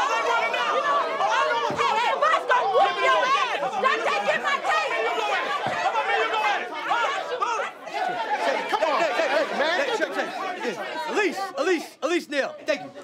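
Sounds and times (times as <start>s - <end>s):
people shouting in argument: 0.0s - 13.0s.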